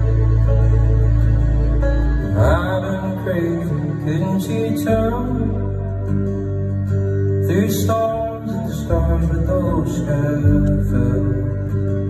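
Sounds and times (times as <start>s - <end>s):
symphony orchestra playing: 0.0s - 10.4s
person singing folk song: 2.3s - 12.0s.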